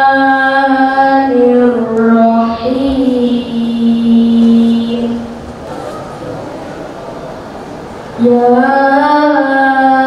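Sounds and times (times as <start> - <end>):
boy chanting through a microphone: 0.0 - 6.8, 8.1 - 10.0.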